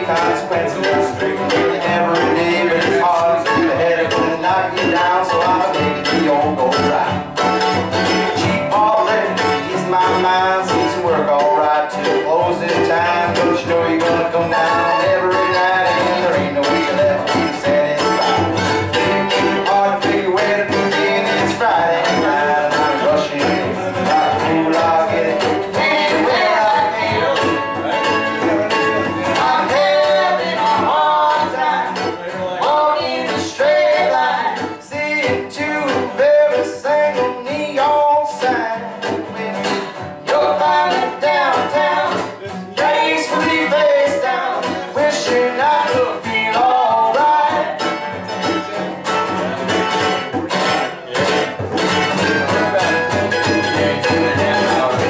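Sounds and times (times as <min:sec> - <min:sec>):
person singing: 0:00.0 - 0:51.5, 0:52.1 - 0:55.0
picked mandolin: 0:00.0 - 0:55.0
strummed acoustic guitar: 0:00.0 - 0:55.0.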